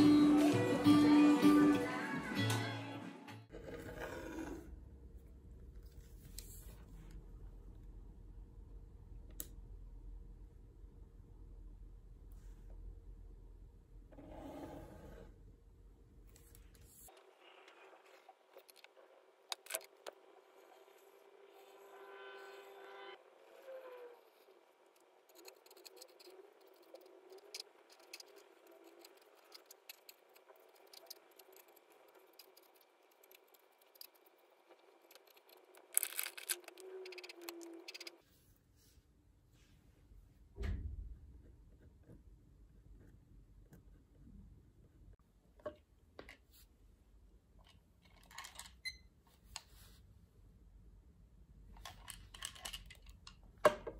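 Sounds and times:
pencil and ruler on paper: 0:16.8 - 0:38.3.

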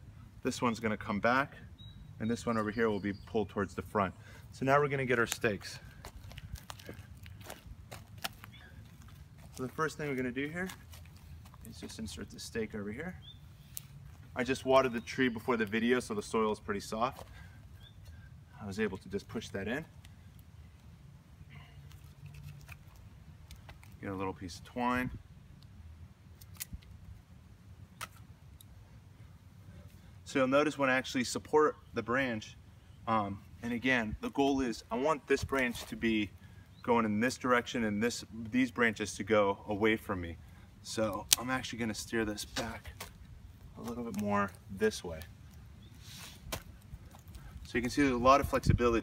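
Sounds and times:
footsteps on bark mulch: 0:04.8 - 0:13.0, 0:34.2 - 0:36.3, 0:40.9 - 0:48.5
scissors snipping twine: 0:26.4 - 0:26.9.

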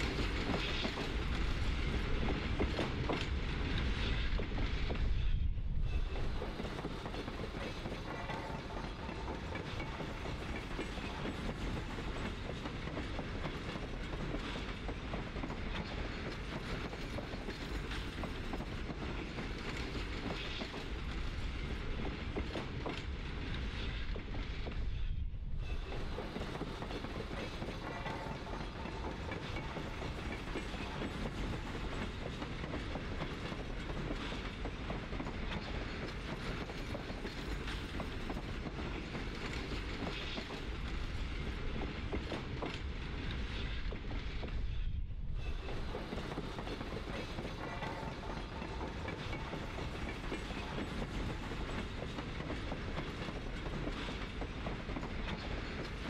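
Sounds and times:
freight train rolling: 0:00.0 - 0:56.0
wheels clicking over rail joints: 0:26.0 - 0:44.5.

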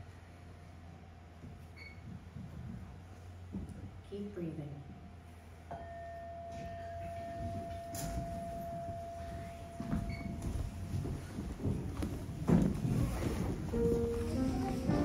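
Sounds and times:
footsteps: 0:01.4 - 0:04.0, 0:06.5 - 0:15.0
singing bowl ringing: 0:05.7 - 0:10.9
people shuffling: 0:06.6 - 0:15.0.

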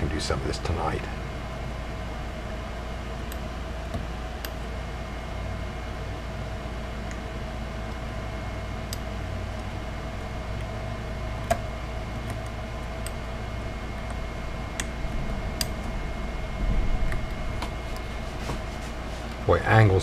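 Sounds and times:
steady background hum: 0:00.0 - 0:20.0.

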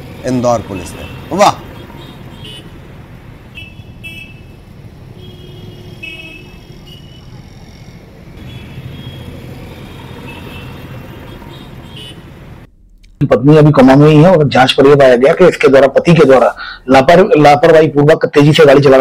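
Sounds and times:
rumble of passing vehicles: 0:00.0 - 0:12.7
car and motorbike horn toots: 0:00.7 - 0:02.7, 0:03.5 - 0:04.6, 0:05.2 - 0:07.4, 0:08.4 - 0:12.3.

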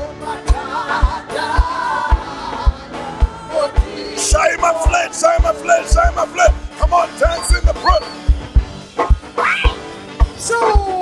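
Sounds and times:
live gospel music: 0:00.0 - 0:11.0
heavy kick drum beat: 0:00.5 - 0:09.9.

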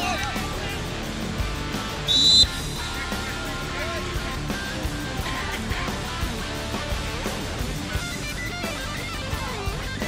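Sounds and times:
referee's whistle blast: 0:02.0 - 0:03.1.

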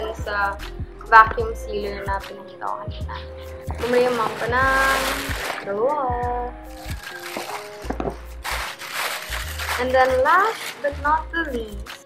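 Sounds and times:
background music with bass: 0:00.0 - 0:12.0
plastic bag rustling: 0:03.7 - 0:06.0, 0:06.7 - 0:12.0.

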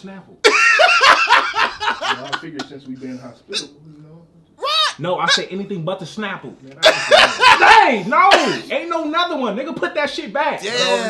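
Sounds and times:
man muttering: 0:03.5 - 0:04.0.

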